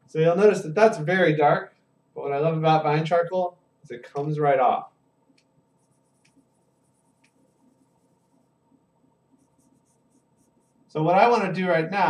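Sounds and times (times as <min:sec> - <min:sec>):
charcoal scratching on paper: 0:05.8 - 0:08.5, 0:09.3 - 0:10.9.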